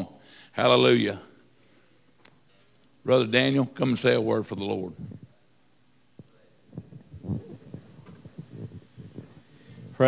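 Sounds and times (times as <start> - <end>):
microphone handling thumps: 6.2 - 10.0.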